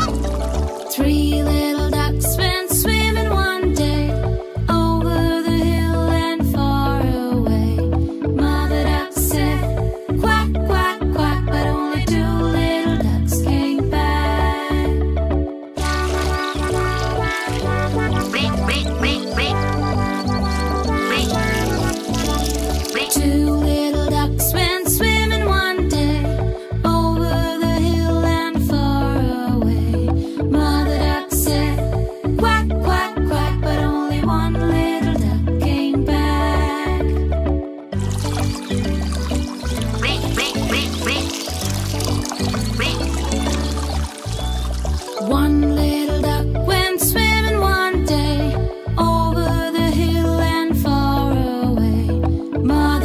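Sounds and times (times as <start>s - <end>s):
bright children's music: 0.0s - 53.0s
cartoon duckling quacking: 16.1s - 23.3s, 39.8s - 41.6s, 42.6s - 43.2s.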